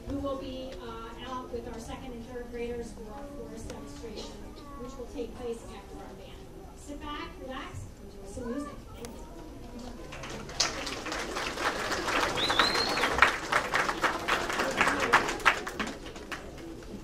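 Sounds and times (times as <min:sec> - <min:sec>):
audience applause: 0:10.0 - 0:17.0
short high whistle: 0:12.4 - 0:13.1.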